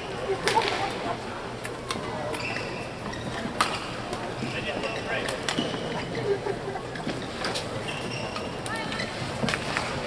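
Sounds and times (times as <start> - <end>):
sports hall background: 0.0 - 10.0.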